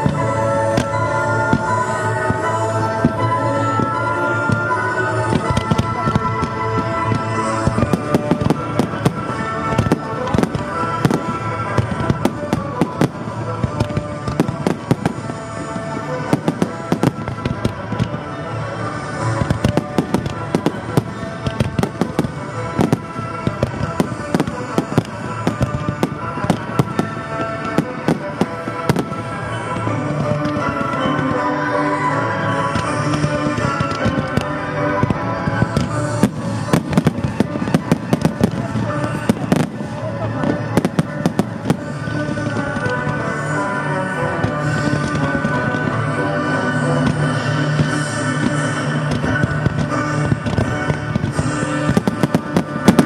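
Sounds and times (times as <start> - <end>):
fireworks bangs and crackles: 0.0 - 53.0
music soundtrack: 0.0 - 53.0.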